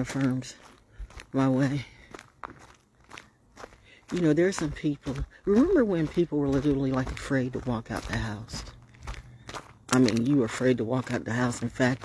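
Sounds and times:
footsteps on gravel: 0.0s - 12.0s.

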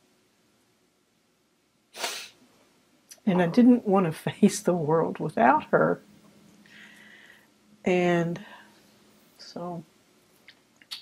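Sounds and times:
woman sniffing: 2.0s - 2.4s.

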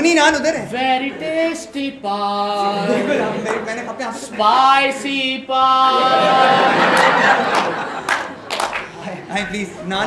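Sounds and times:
audience laughing and cheering: 2.6s - 5.0s, 5.7s - 10.0s
sharp claps: 7.0s - 8.9s.

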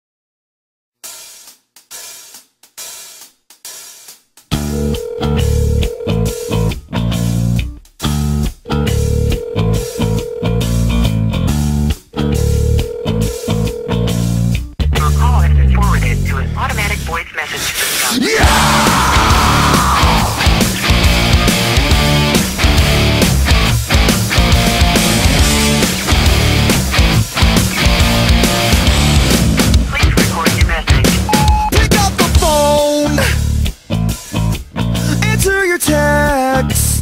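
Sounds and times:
rock band playing: 4.5s - 17.2s, 18.4s - 36.7s
distorted guitars: 4.5s - 37.0s
drum hits: 18.4s - 33.5s.

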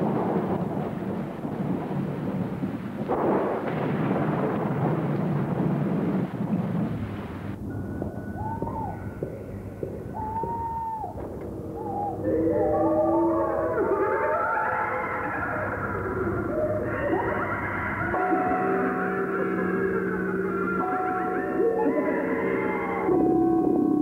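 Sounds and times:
rough rumbling noise: 0.0s - 20.9s
held high tone: 7.6s - 14.4s, 15.6s - 24.0s
eerie layered music: 7.6s - 24.0s.

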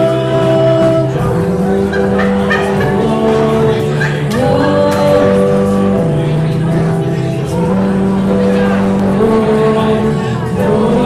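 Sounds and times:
band playing sustained notes: 0.0s - 11.0s.

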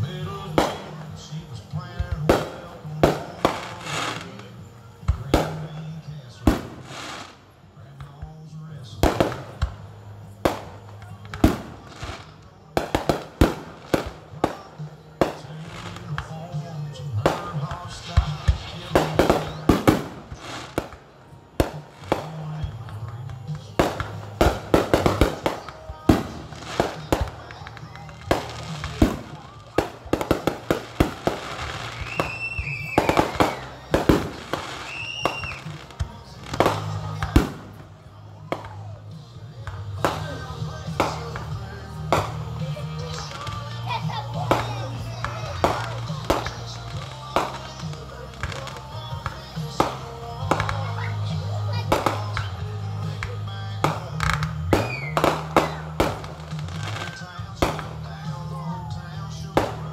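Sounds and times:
fireworks bangs and crackles: 0.0s - 59.9s
music: 0.0s - 59.9s
voices: 0.0s - 59.9s
firework whistle: 28.0s - 35.8s, 54.3s - 57.3s.

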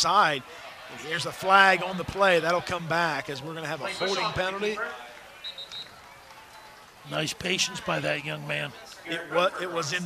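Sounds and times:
faint open-air field ambience: 0.0s - 10.0s.

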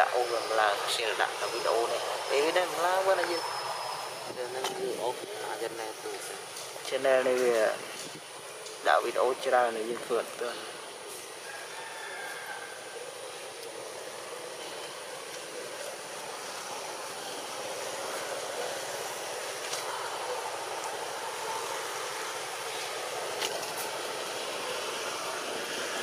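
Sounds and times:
outdoor background hiss: 0.0s - 26.0s.

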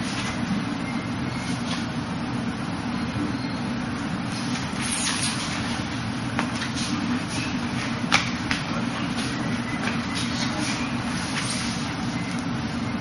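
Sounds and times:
fan rumble with hiss: 0.0s - 13.0s.

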